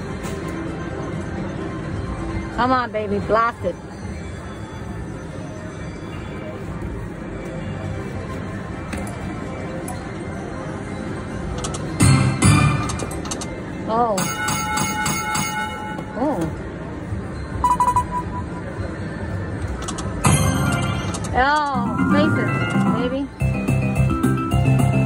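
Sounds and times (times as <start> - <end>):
slot machine bonus sounds: 14.2 - 16.2, 20.2 - 25.0.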